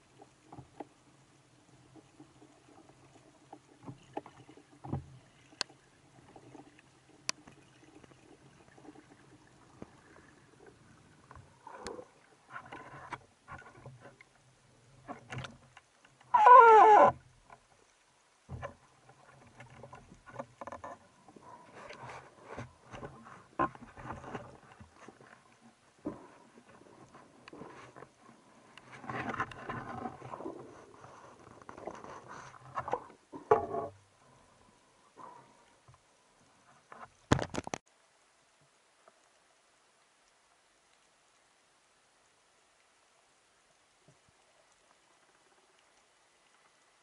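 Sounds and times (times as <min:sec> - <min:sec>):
faint underwater hiss: 0:00.0 - 0:19.4, 0:21.0 - 0:37.0
small clicks and knocks: 0:15.0 - 0:16.3, 0:18.5 - 0:21.0, 0:36.8 - 0:37.9.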